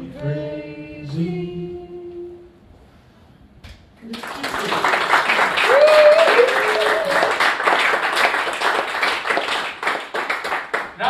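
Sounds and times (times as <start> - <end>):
audience applauding: 4.0 - 11.0.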